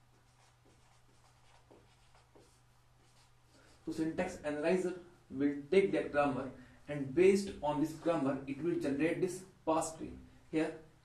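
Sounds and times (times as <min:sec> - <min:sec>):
marker pen writing on whiteboard: 0:00.0 - 0:04.1.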